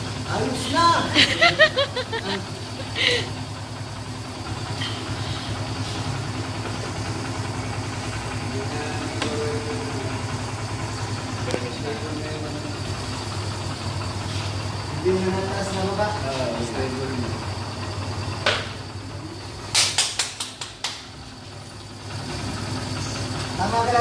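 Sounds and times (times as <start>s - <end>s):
motorcycle engine idling: 0.0s - 24.0s.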